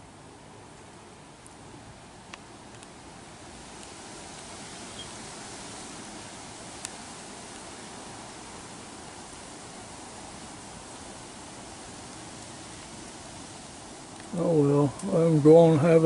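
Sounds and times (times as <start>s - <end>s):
steady background hiss: 0.0s - 16.0s.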